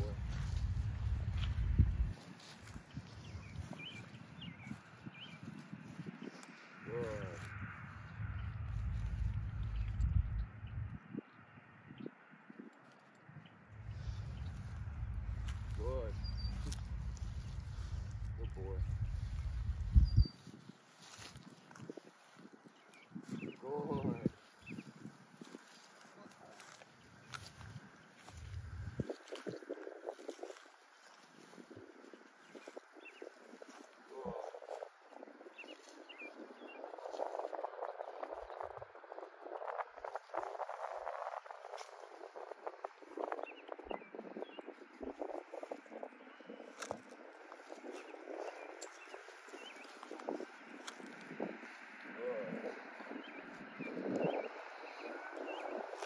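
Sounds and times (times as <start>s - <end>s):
footsteps through grass: 0.0s - 10.9s, 13.7s - 56.0s
bird chirping: 0.0s - 12.1s, 13.0s - 21.8s, 46.4s - 50.5s
low wind rumble: 0.0s - 56.0s.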